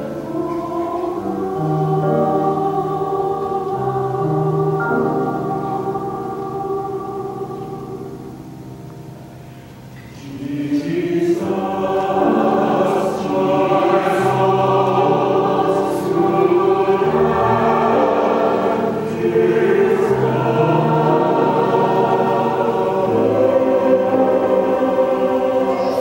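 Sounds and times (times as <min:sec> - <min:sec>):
church choir singing: 0:00.0 - 0:26.0.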